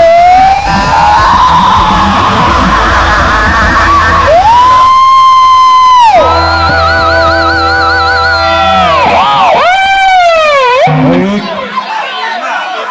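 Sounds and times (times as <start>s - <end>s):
lead electric guitar sliding: 0.0s - 11.8s
live rock band playing: 0.6s - 11.8s.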